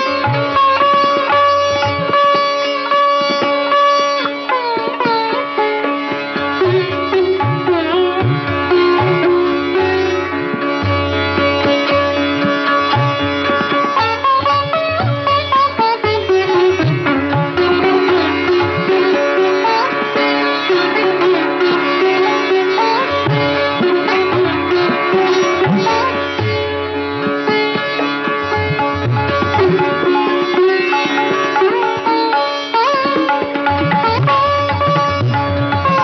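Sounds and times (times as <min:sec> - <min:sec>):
sitar playing sliding notes: 0:00.0 - 0:36.0.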